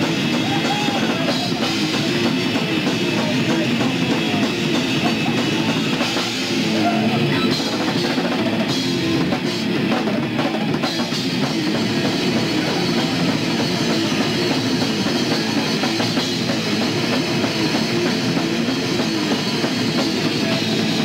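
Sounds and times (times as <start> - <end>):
death metal band playing: 0.0 - 21.0
fast drum kit strokes: 0.0 - 21.0
heavy metal guitar: 0.0 - 21.0.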